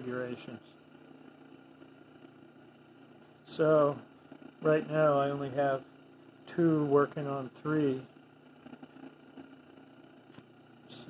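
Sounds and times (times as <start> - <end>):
faint low electrical hum: 0.0 - 11.0.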